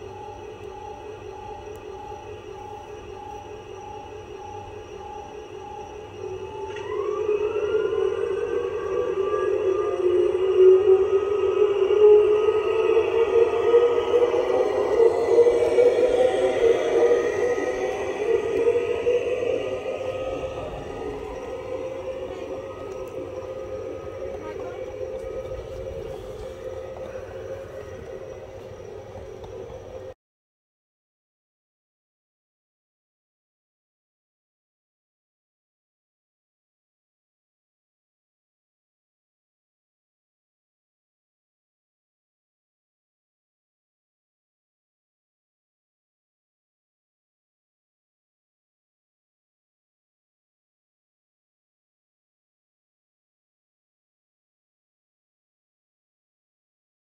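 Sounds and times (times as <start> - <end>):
model locomotive hum: 0.0 - 30.2
model locomotive whine: 0.0 - 30.2.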